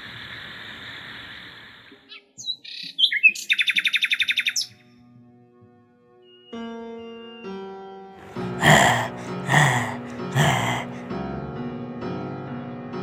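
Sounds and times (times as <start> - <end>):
steady hiss: 0.0 - 2.0
bird chirping: 2.0 - 4.8.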